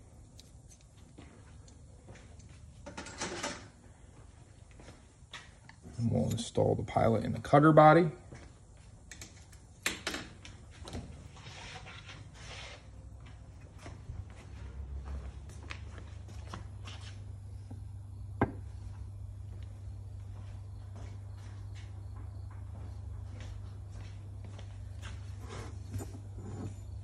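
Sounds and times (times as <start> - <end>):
footsteps: 4.1 - 6.2, 8.2 - 9.0, 12.4 - 17.3, 18.8 - 26.2
steady low hum: 12.8 - 27.0.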